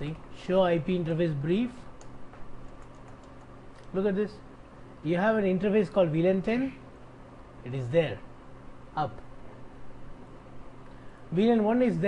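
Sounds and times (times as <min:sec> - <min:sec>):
faint keyboard keystrokes: 0:02.0 - 0:04.0.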